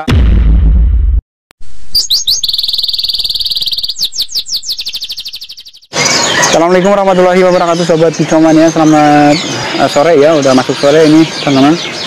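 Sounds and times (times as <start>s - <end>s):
songbird singing a trill: 1.9s - 12.0s.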